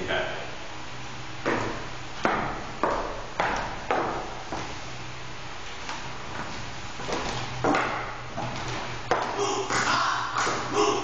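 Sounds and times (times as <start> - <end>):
footsteps on wooden floor: 1.4 - 4.8, 5.8 - 9.4.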